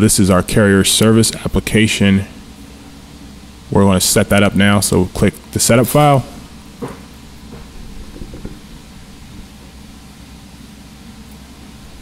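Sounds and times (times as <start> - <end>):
low background hum: 0.0 - 12.0.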